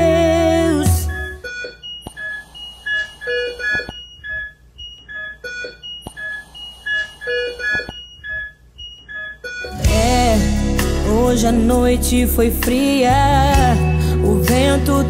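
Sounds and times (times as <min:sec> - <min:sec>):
patient monitors beeping: 0:00.9 - 0:09.8.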